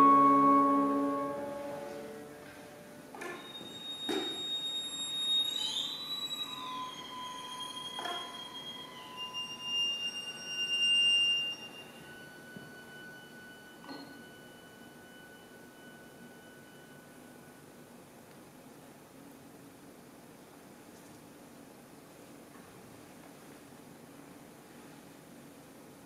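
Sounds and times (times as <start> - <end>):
high held sliding tones: 0.0 - 17.9.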